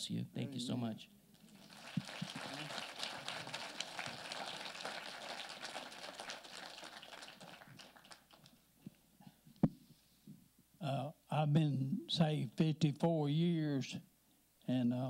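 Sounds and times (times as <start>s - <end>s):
people applauding: 1.4s - 8.6s.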